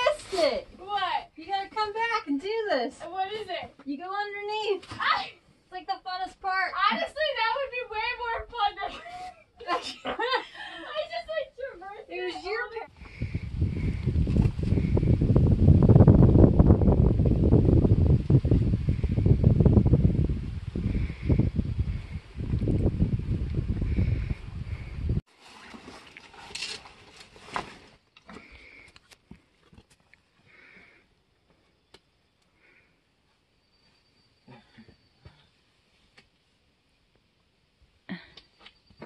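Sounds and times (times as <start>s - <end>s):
wind buffeting microphone: 12.7s - 25.2s.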